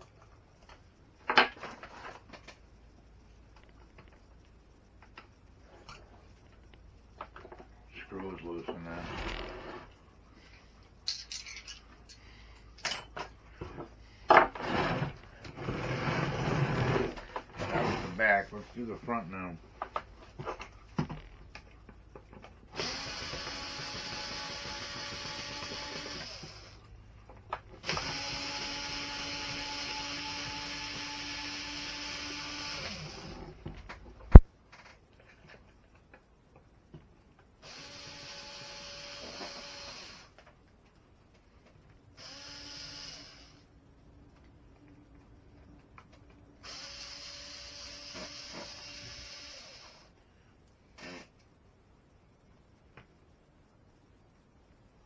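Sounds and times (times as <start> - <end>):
metal hardware clinking: 11.0 - 13.4
plastic scraping on wood: 14.5 - 18.3.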